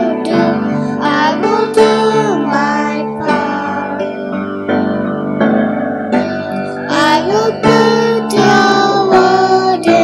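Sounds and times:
children singing: 0.0 - 4.4, 6.2 - 10.0
guitar: 0.0 - 10.0.

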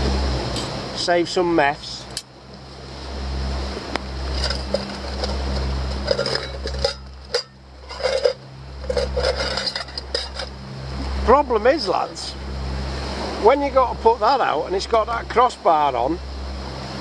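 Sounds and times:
metal pots clinking and scraping: 4.2 - 10.6.

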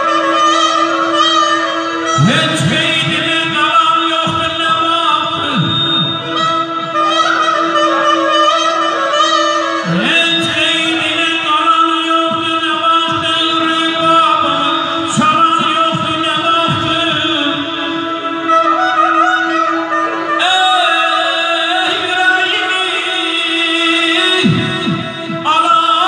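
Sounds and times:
accordion: 0.0 - 26.0
man singing into a microphone: 0.0 - 26.0
held drone note: 0.2 - 25.6.

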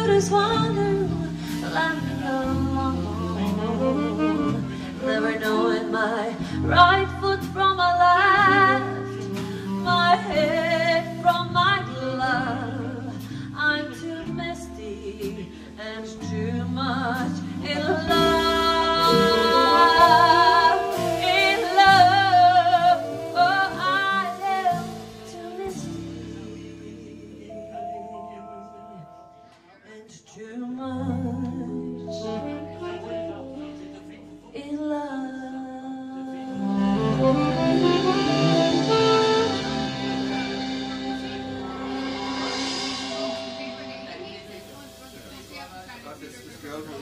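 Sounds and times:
woman singing jazz ballad: 0.0 - 29.1, 29.8 - 45.7
instrumental accompaniment: 0.0 - 29.8, 31.1 - 34.8, 36.3 - 47.0
faint voices talking: 17.1 - 47.0.

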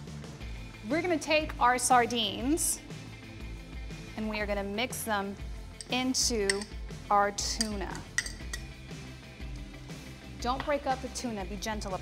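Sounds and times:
soft background music: 0.0 - 12.0
metal utensil clinking glass bowl: 5.8 - 6.8, 7.6 - 8.7.

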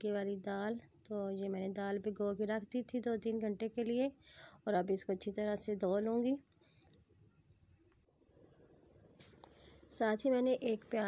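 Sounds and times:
woman speaking: 0.0 - 6.5, 9.9 - 11.0.

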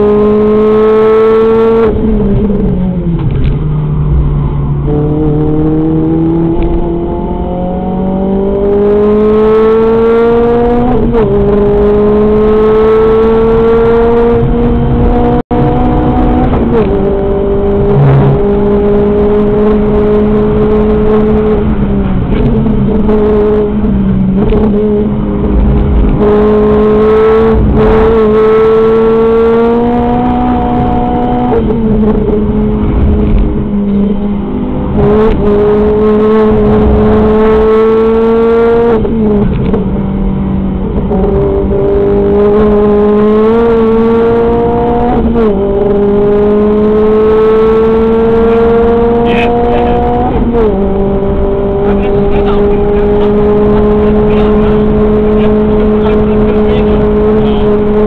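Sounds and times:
car engine at high revs: 0.0 - 58.0
road and tyre rumble: 0.0 - 58.0.

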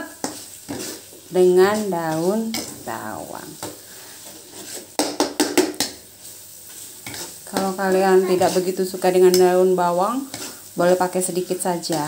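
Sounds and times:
paste frying: 0.0 - 12.0
spatula scraping a pan: 0.1 - 5.1, 5.8 - 12.0.

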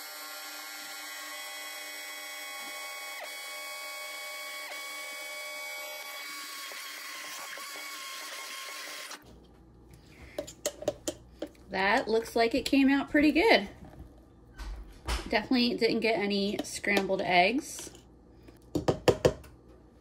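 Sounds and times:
immersion blender whining: 0.0 - 9.2.

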